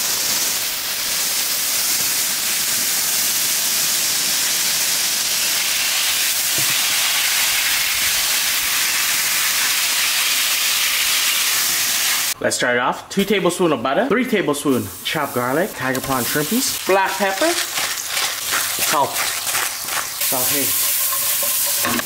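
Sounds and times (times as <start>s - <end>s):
water spray hissing on plants: 0.0s - 12.4s, 14.6s - 22.0s.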